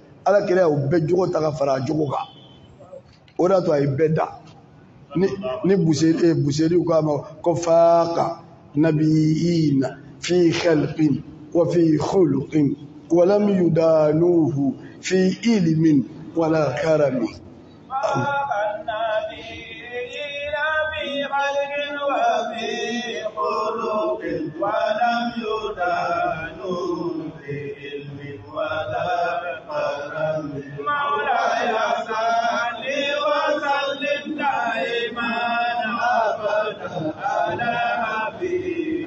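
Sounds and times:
man chanting through microphones: 0.0 - 2.4, 3.4 - 4.5, 5.1 - 39.0.

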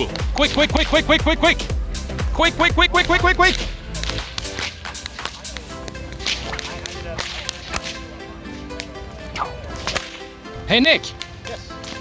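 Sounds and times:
whip cracking: 0.0 - 1.0, 3.0 - 8.1, 8.8 - 10.3, 11.1 - 12.0.

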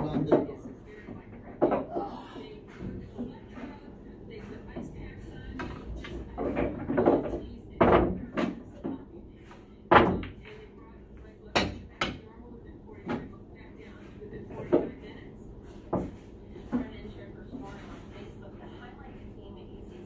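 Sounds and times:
balls knocking on pool table: 0.0 - 2.0, 5.5 - 9.1, 9.9 - 10.7
pool balls clacking: 0.0 - 2.0, 5.5 - 9.1.

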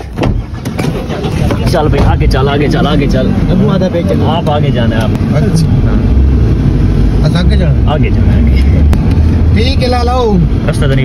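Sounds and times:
car engine and road rumble: 0.0 - 11.0
men talking: 1.2 - 11.0.

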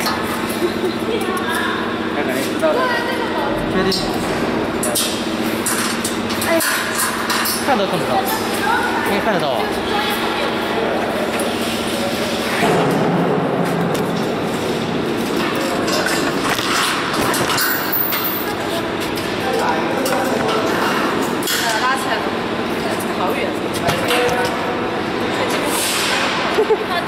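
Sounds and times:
voices in echoing hall: 0.0 - 27.0.

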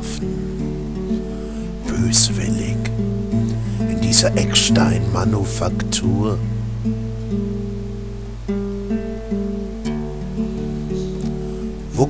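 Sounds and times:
acoustic guitar playing slowly: 0.0 - 12.0.

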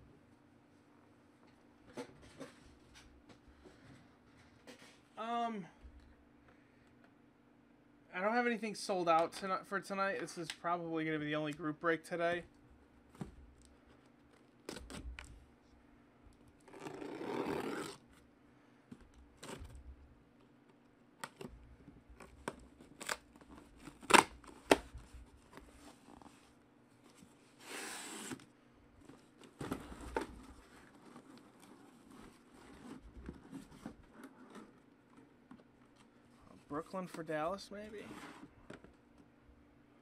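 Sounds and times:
cardboard tearing and scraping: 16.6 - 18.0.

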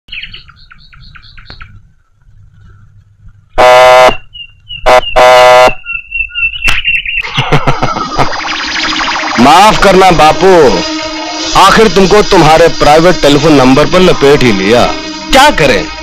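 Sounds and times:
loud blaring horn blasts: 3.6 - 4.2, 4.9 - 5.8, 10.2 - 16.0
thin wavering high tone: 8.0 - 12.1.

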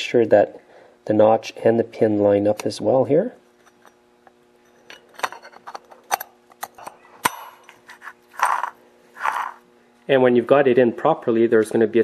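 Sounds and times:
metal scrapes: 7.8 - 9.6.

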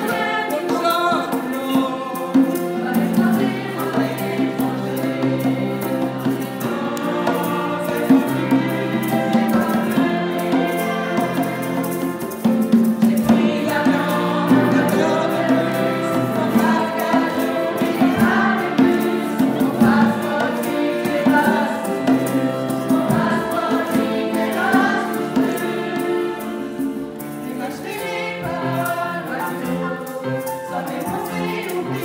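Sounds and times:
conga drums: 0.0 - 32.0
grand piano: 0.0 - 32.0
group of voices singing: 0.0 - 32.0
violins: 0.0 - 32.0.

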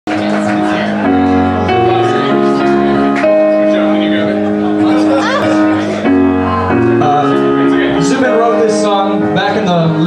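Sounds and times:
held keyboard chords: 0.1 - 10.0.

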